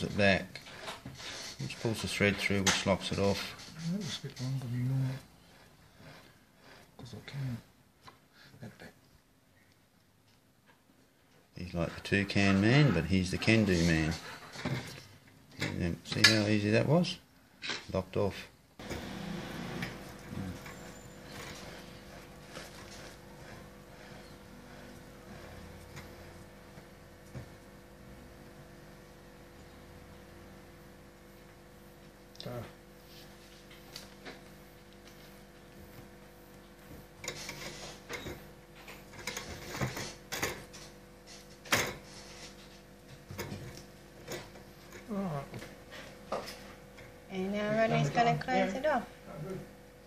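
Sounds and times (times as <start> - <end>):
steady low hum: 18.5 - 50.0.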